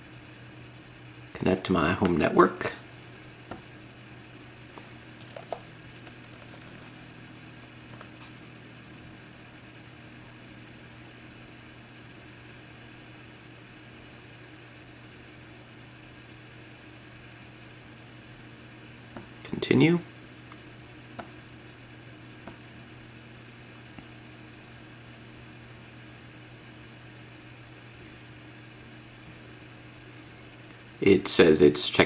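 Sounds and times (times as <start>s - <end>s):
low room hum: 0.0s - 32.0s.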